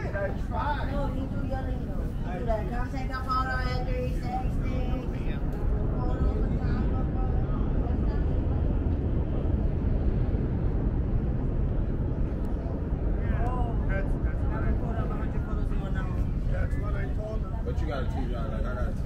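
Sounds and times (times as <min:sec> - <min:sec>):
faint voices: 0:00.0 - 0:19.0
wind buffeting microphone: 0:00.0 - 0:19.0.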